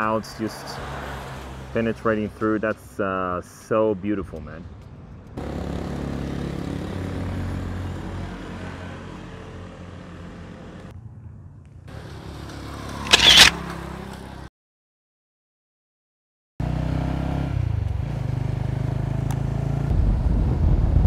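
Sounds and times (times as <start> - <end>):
motor vehicle running: 4.2 - 14.5, 16.6 - 21.0.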